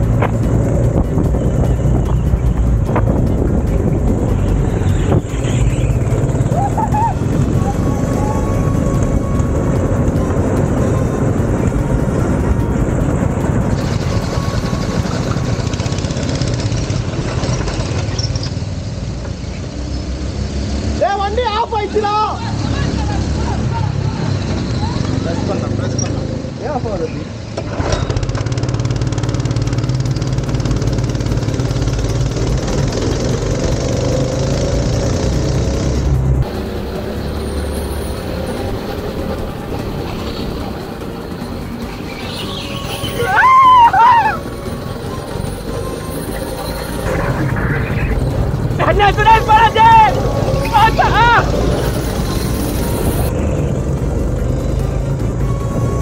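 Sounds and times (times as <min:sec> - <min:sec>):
go-kart engine running: 0:00.0 - 0:56.0
voices calling out: 0:04.5 - 0:09.2, 0:40.0 - 0:52.7.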